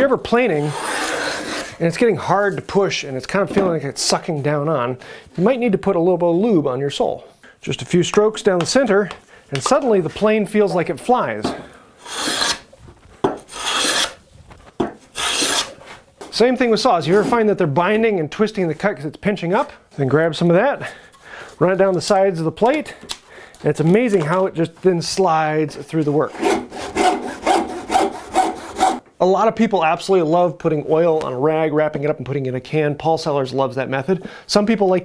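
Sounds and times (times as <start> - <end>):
hand plane shaving wood: 0.5 - 1.8, 12.0 - 12.7, 13.5 - 14.2, 15.2 - 15.8, 26.3 - 29.0.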